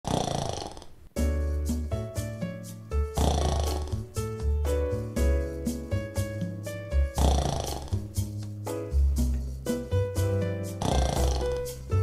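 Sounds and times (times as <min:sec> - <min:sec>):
loud rasping snore: 0:00.0 - 0:01.0, 0:03.1 - 0:04.1, 0:07.1 - 0:08.3, 0:10.6 - 0:11.9
music with bass and chords: 0:01.2 - 0:12.0.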